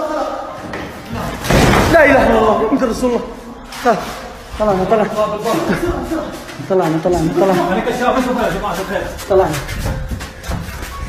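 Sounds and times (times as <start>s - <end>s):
loud bang: 1.4s - 2.4s.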